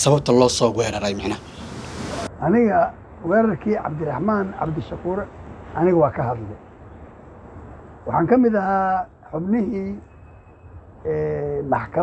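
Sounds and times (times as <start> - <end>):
man speaking: 0.0 - 1.5.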